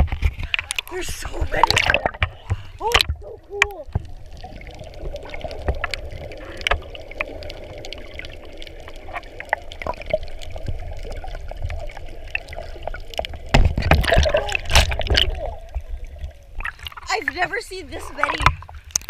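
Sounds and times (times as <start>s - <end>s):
muffled underwater rumble: 0.0s - 18.8s.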